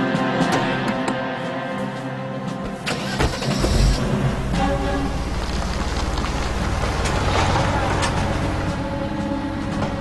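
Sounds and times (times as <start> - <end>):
background music: 0.0 - 10.0
engine starting and rumbling: 2.8 - 10.0.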